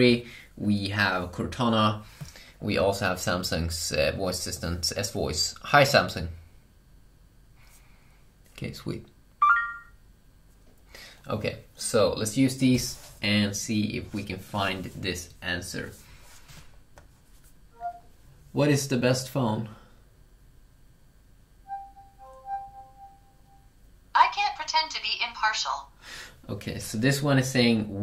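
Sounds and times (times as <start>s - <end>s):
rising electronic chime: 9.4s - 10.0s, 21.7s - 23.7s.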